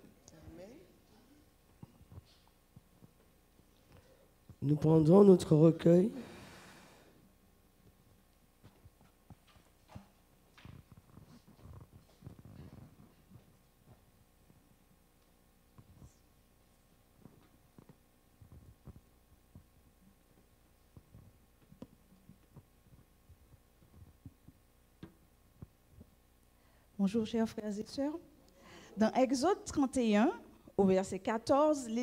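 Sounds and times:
faint steady hum: 0.0 - 32.0.

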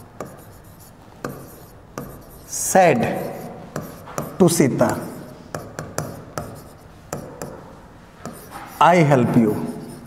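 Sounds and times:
pen tapping on glass board: 0.0 - 0.5, 1.2 - 2.3, 3.8 - 8.6
pen scratching on glass board: 0.0 - 7.6, 8.2 - 8.8.

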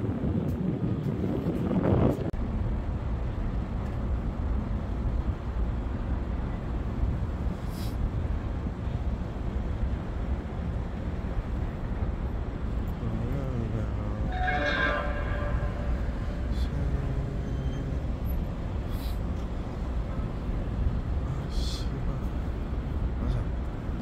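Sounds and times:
distant traffic rumble: 0.0 - 24.0
brief pitched call or tone: 14.3 - 18.0.

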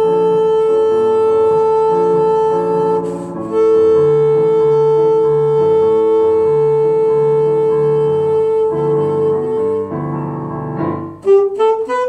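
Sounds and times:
saxophone holding long note: 0.0 - 10.2, 10.9 - 12.0
piano chords: 0.0 - 12.0.

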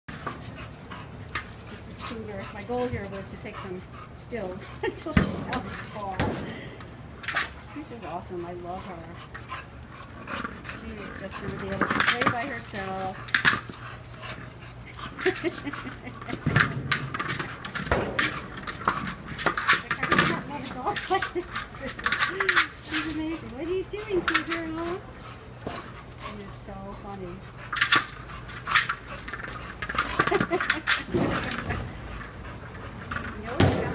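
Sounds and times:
dog panting: 0.1 - 6.7, 7.3 - 33.9
woman laughing: 4.4 - 5.2, 14.9 - 16.6, 20.0 - 23.2, 30.0 - 31.5
plastic ball pushed around: 10.0 - 14.6, 15.2 - 23.2, 27.7 - 33.9.

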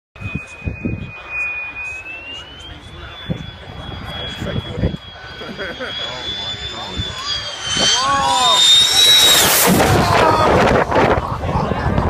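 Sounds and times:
jet engine whine: 0.2 - 12.0.

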